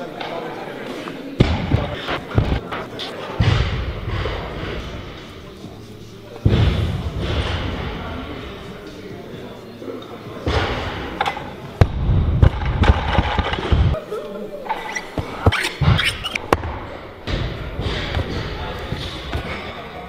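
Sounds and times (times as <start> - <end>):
voices echoing in hall: 0.0 - 20.0.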